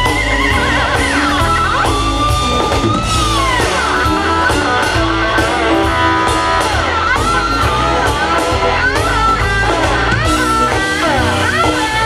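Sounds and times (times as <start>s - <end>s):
bass guitar: 0.0s - 12.0s
electric guitar soloing: 0.0s - 12.0s
steady drum beat: 0.0s - 12.0s.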